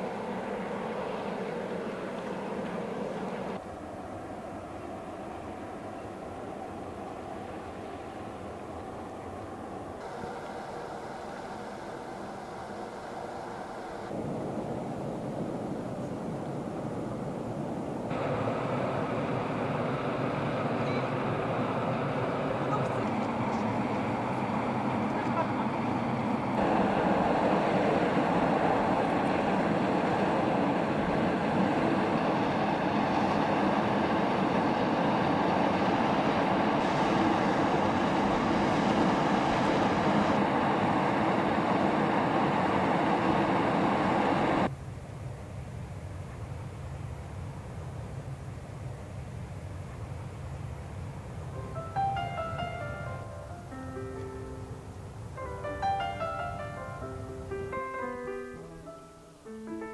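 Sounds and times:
steam venting rush: 0.0s - 44.7s.

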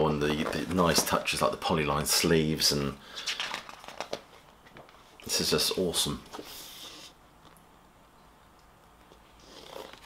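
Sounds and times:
paper rustling and crinkling: 0.2s - 1.5s, 3.1s - 5.0s.

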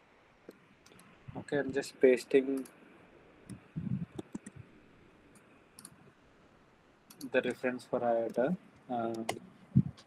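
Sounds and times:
mouse and keyboard clicks: 3.5s - 4.6s.

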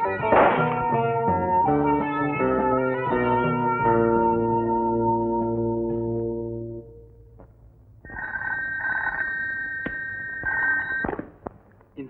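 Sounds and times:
desk telephone ringing: 8.1s - 11.0s.

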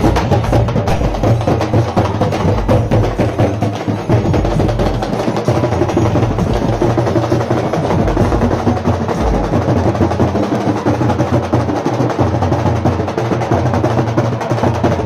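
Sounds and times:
fast continuous drumming: 0.0s - 15.0s.

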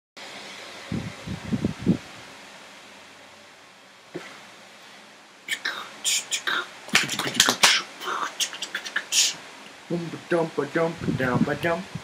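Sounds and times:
steady hiss: 0.2s - 12.0s
beatboxing: 5.5s - 9.4s.

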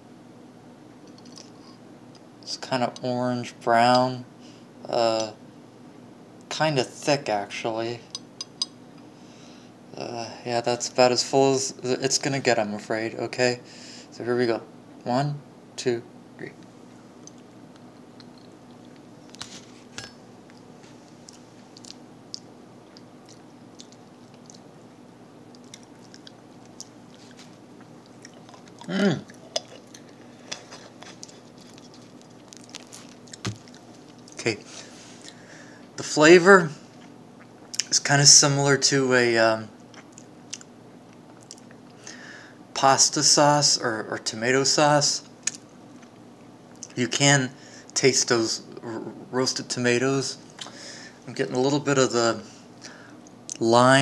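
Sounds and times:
lip smacks and mouth clicks: 21.2s - 24.7s, 25.5s - 30.2s, 39.9s - 41.8s, 45.4s - 46.1s.

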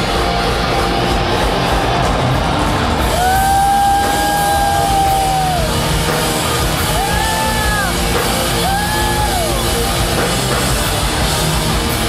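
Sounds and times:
rock band playing loud: 0.0s - 12.0s.

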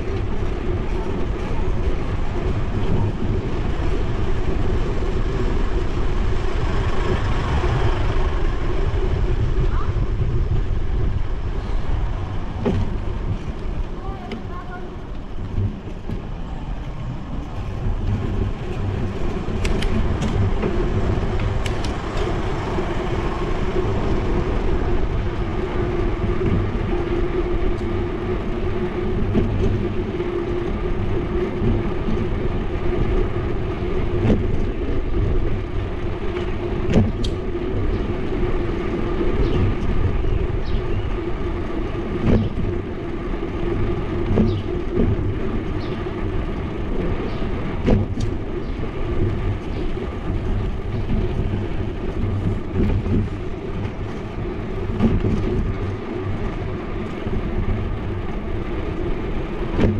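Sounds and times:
bicycle tyres rumbling on asphalt: 0.0s - 59.9s
constant hum: 0.0s - 59.9s
sharp clicks and rattles: 0.0s - 59.9s
wind on microphone: 0.0s - 59.9s.

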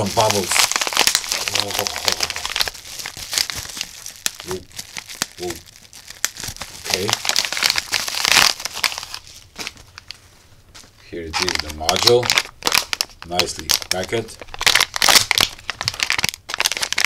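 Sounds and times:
bubble wrap crackling: 0.0s - 17.0s.

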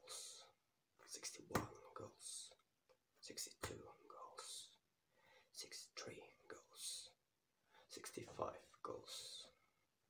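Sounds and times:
man whispering: 0.0s - 9.8s.

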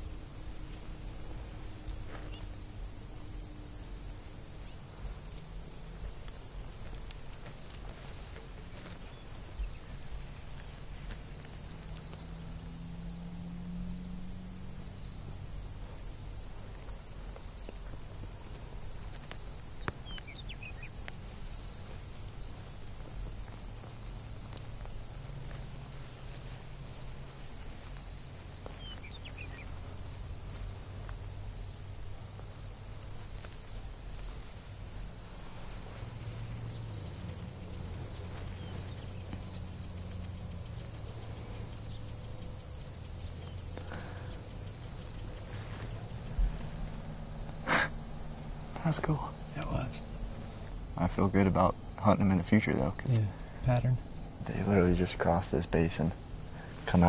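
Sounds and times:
low steady rumble: 0.0s - 55.5s
crickets chirping: 0.0s - 57.0s
fast insect trill: 0.0s - 57.0s.

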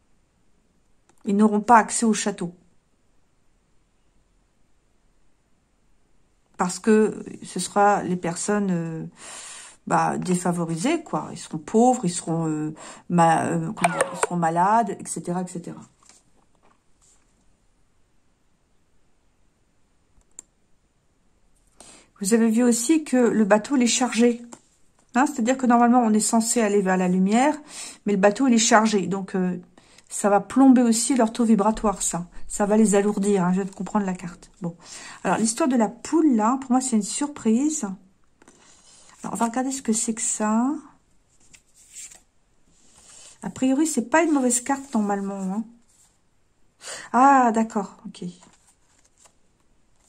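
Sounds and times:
playing card rustling on cloth: 15.9s - 17.4s, 41.3s - 43.4s, 44.2s - 46.2s, 48.4s - 50.0s
soft brush: 41.3s - 43.3s, 43.9s - 46.3s.

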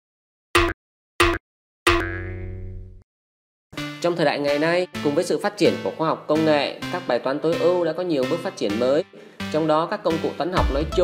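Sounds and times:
music: 3.7s - 11.0s.

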